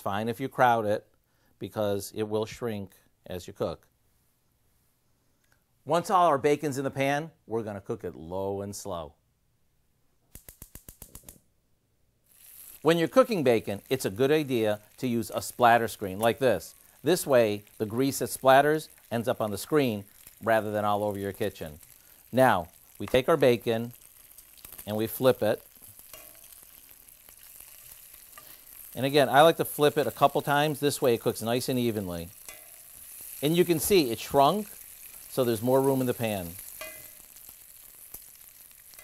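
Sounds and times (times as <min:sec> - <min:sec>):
bacon sizzling: 0:12.2 - 0:39.0
metal tongs ticking: 0:12.5 - 0:39.0.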